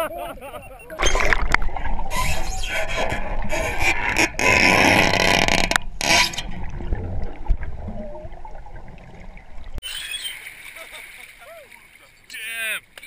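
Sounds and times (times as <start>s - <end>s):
water sloshing over microphone: 0.1s - 12.3s.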